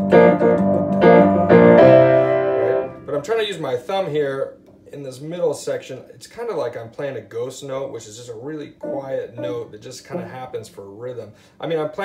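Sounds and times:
upright piano rock shuffle: 0.0 - 4.4.

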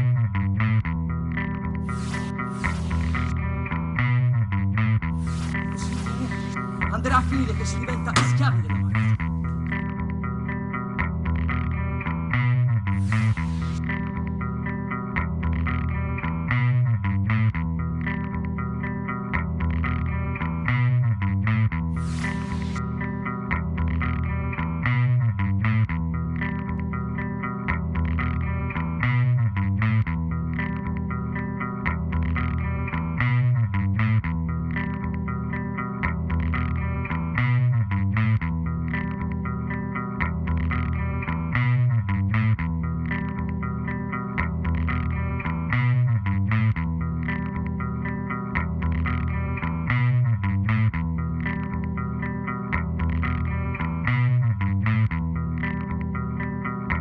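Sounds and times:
guitar with effects: 0.0 - 57.0.

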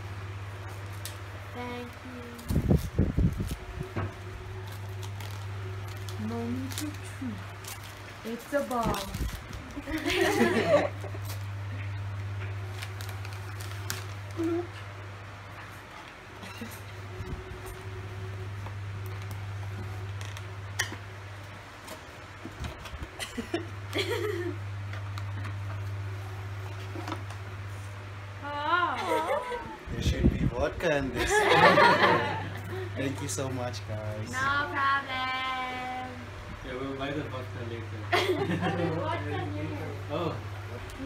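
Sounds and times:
steady low hum: 0.0 - 41.0
wrapping paper crinkling and tearing: 1.8 - 11.6, 12.6 - 14.8.

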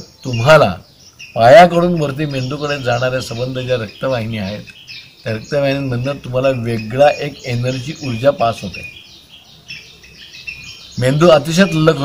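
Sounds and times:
man speaking in low voice: 1.4 - 4.7, 5.3 - 8.9, 11.0 - 12.0.

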